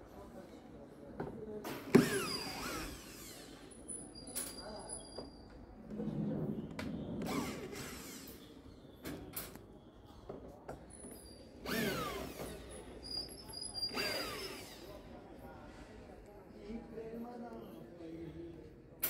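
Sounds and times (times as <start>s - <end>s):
cordless drill whining: 2.0s - 3.7s, 11.6s - 12.6s, 13.8s - 15.0s.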